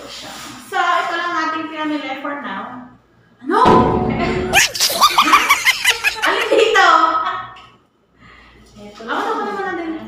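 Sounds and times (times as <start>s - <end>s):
woman laughing: 4.5s - 6.9s.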